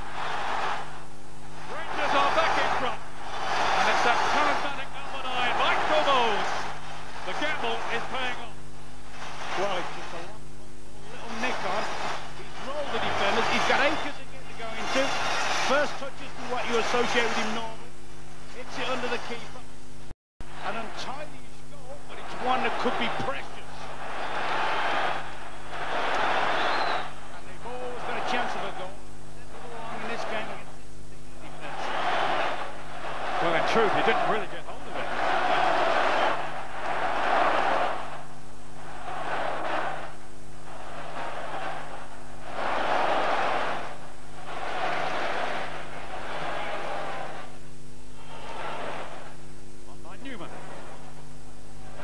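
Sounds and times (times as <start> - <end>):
steady low hum: 0.0 - 15.1, 15.7 - 20.1, 27.1 - 52.0
stadium crowd singing and chanting: 34.9 - 47.6.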